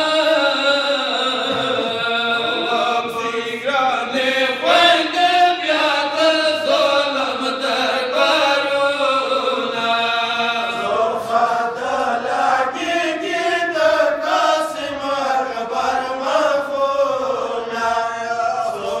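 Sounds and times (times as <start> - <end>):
men chanting a lament: 0.0 - 19.0.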